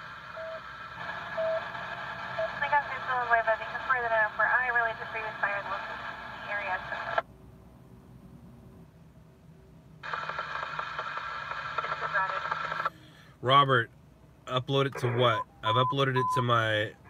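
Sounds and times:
scanner radio voice transmissions: 0.3s - 7.2s, 10.1s - 13.8s, 14.5s - 17.0s.

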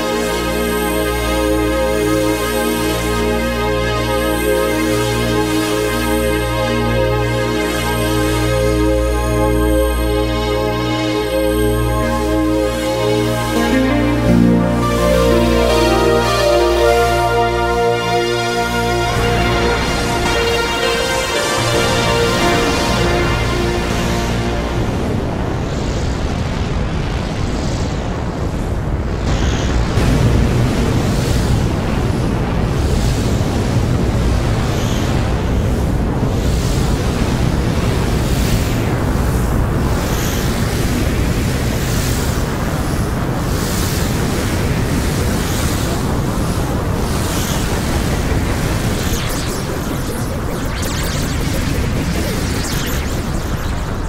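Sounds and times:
synthesizer chord: 0.1s - 26.1s, 48.8s - 54.0s
synthesizer noise texture: 0.1s - 26.6s, 47.2s - 54.0s.

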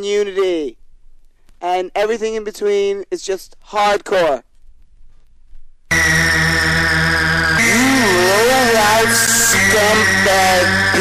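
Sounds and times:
harsh synthesizer tone: 5.9s - 11.0s.

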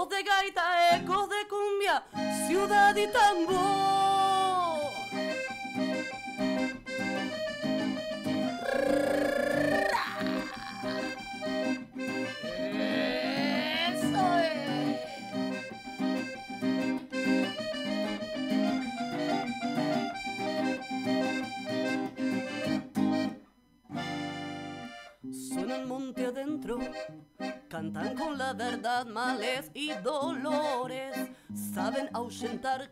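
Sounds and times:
acoustic guitar: 0.0s - 32.9s
piano accordion: 2.1s - 32.9s.

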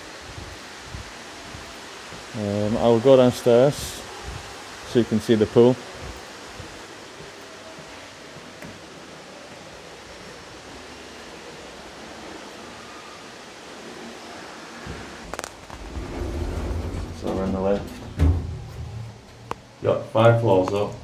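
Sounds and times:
background hiss: 0.0s - 21.0s
lift car rumble: 14.8s - 19.4s.

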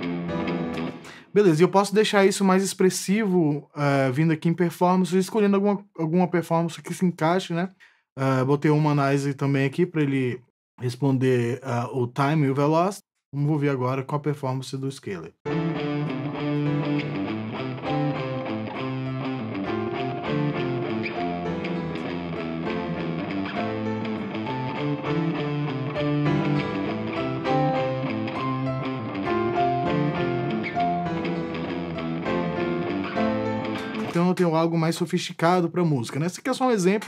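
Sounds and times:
guitar over chord progression: 0.0s - 1.2s, 15.5s - 34.2s.

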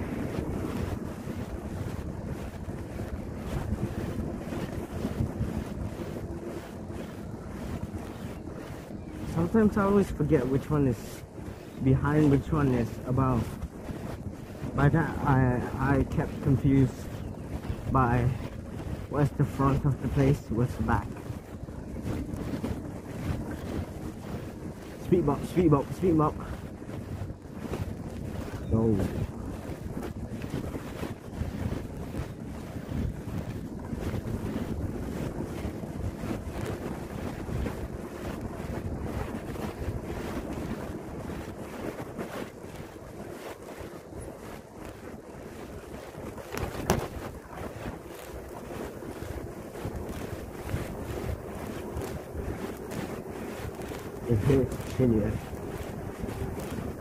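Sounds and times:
bike tyre rumble: 0.0s - 57.0s
wind buffeting microphone: 0.0s - 57.0s.

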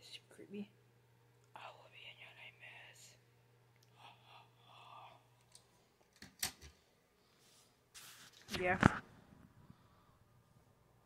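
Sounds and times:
low steady hum: 0.0s - 11.0s
faint whispering: 1.6s - 3.2s, 3.9s - 5.4s.

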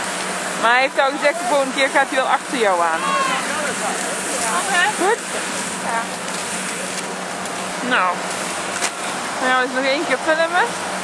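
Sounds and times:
steady rushing hiss: 0.0s - 9.9s.

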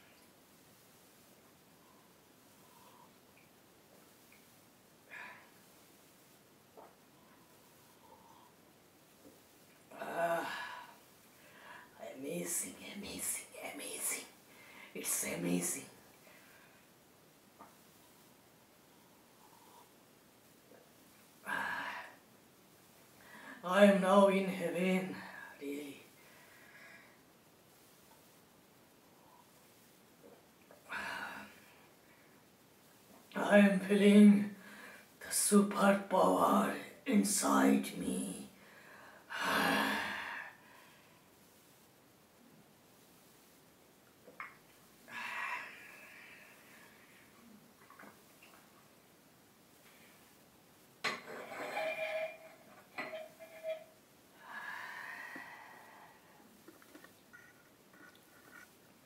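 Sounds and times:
man whispering: 12.0s - 14.3s.

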